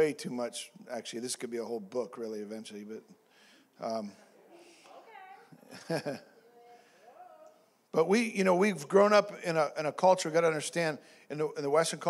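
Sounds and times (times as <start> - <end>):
man laughing: 5.6 - 6.3.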